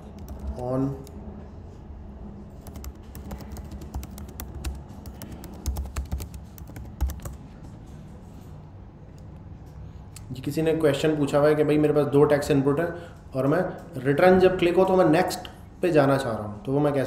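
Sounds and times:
computer keyboard typing: 0:00.0 - 0:01.2, 0:02.6 - 0:07.7.

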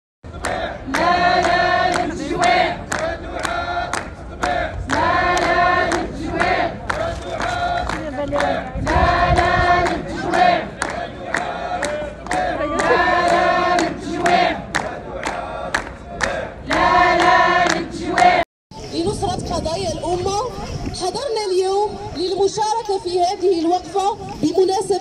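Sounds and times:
crowd chanting in unison: 0:00.3 - 0:18.4.

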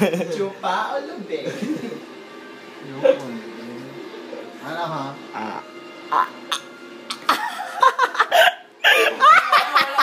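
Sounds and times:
group of people laughing: 0:07.1 - 0:10.0.

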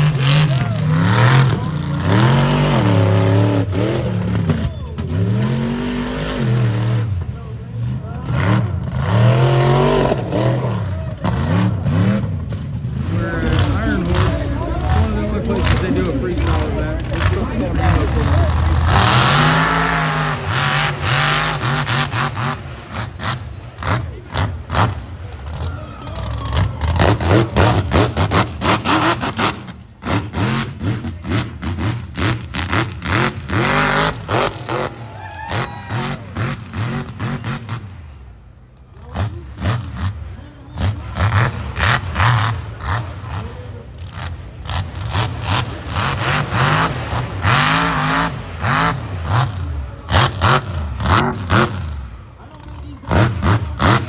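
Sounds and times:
truck engine revving: 0:00.0 - 0:54.0.

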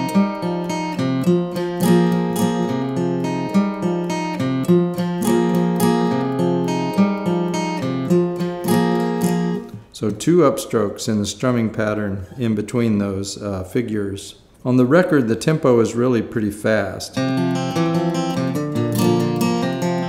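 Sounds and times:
acoustic guitar strumming: 0:00.0 - 0:09.9, 0:17.2 - 0:20.0.

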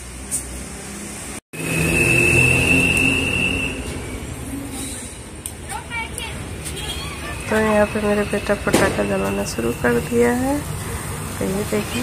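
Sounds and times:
low street rumble: 0:00.0 - 0:12.0
high whistling tone: 0:01.6 - 0:05.2
voices: 0:05.5 - 0:10.7.

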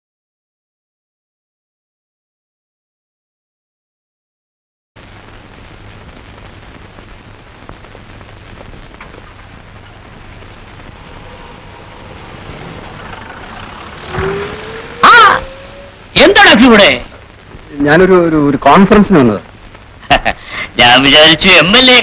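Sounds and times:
film soundtrack hiss and hum: 0:05.0 - 0:22.0.

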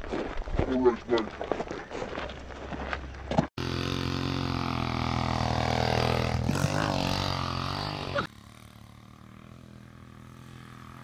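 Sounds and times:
small engine running: 0:03.6 - 0:11.0.

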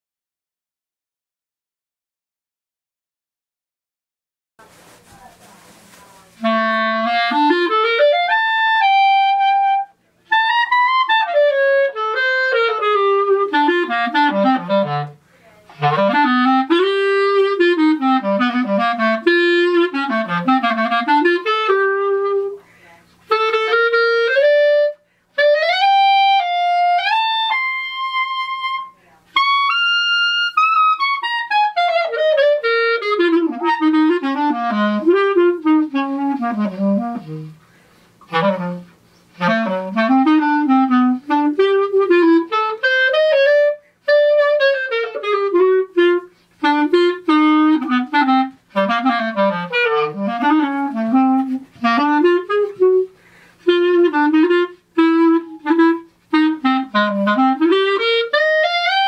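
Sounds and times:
clarinet playing fast runs: 0:06.4 - 0:59.0
player breathing: 0:37.6 - 0:38.2, 0:53.1 - 0:53.6.

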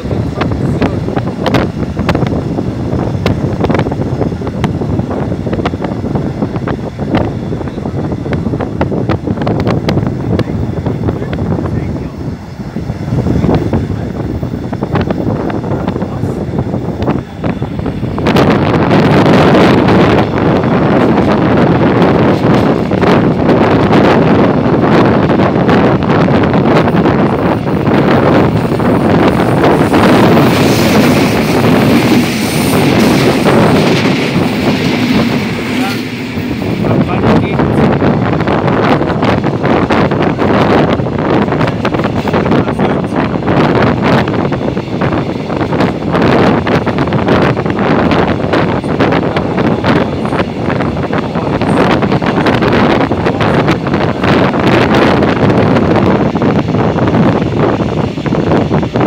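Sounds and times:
moving train running noise: 0:00.0 - 0:59.0
wind buffeting microphone: 0:00.0 - 0:59.0.

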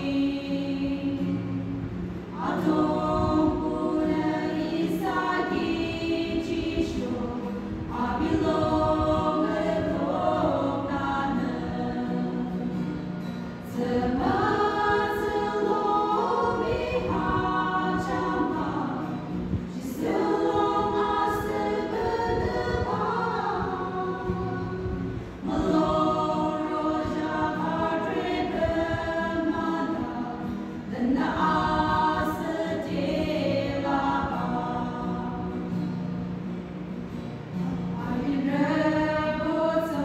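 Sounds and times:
women singing gospel together: 0:00.0 - 0:36.3, 0:37.6 - 0:40.0.

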